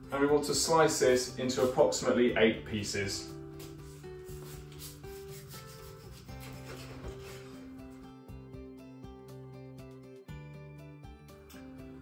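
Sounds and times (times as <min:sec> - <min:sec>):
background music: 0:00.0 - 0:12.0
knife sawing through meat: 0:04.6 - 0:07.6.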